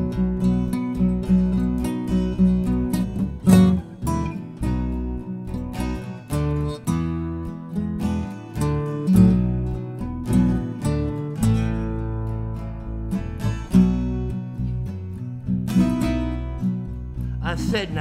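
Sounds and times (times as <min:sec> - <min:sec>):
acoustic guitar strumming chords: 0:00.0 - 0:18.0.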